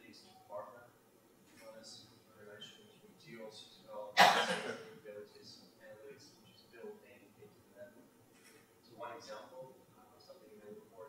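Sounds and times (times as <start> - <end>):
loud cough: 4.2 - 4.9.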